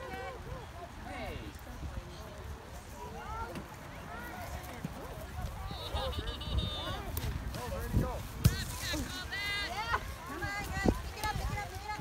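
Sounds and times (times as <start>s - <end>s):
wind rumble on microphone: 5.2s - 12.0s.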